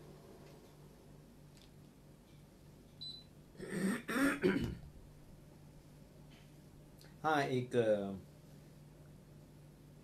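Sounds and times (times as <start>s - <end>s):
man clearing his throat: 3.6s - 4.9s.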